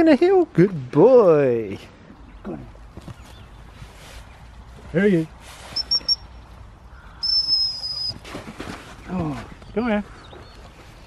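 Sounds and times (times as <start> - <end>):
shrill dog whistle: 5.8 - 6.2, 7.2 - 8.2.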